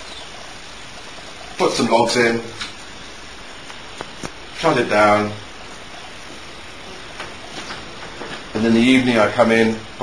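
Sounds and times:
even background hiss: 0:00.0 - 0:10.0.

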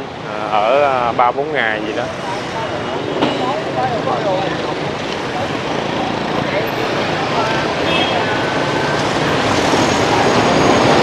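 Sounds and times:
motorbikes running: 0:00.0 - 0:11.0.

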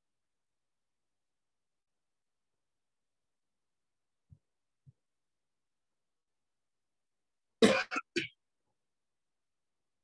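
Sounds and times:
man coughing: 0:07.6 - 0:08.4.

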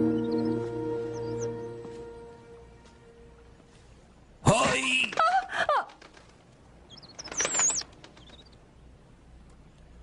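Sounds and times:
high warbling bird chirp: 0:00.0 - 0:01.8, 0:06.9 - 0:08.9
bird gliding call: 0:06.9 - 0:08.6.

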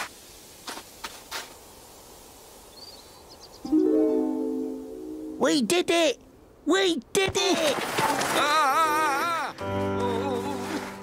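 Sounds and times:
sustained music chord: 0:03.7 - 0:05.5.

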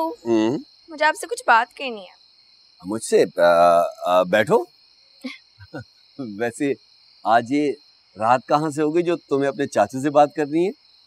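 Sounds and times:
person speaking: 0:00.0 - 0:01.4, 0:02.8 - 0:04.6, 0:05.6 - 0:10.7
crickets chirping: 0:00.0 - 0:11.0.

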